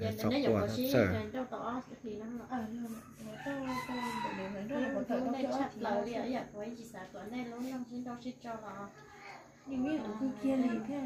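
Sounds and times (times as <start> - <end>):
rooster crowing: 2.9 - 5.7.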